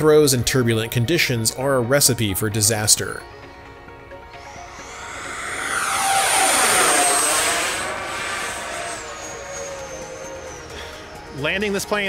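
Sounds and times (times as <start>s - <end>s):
model jet fans whining: 4.4s - 11.2s.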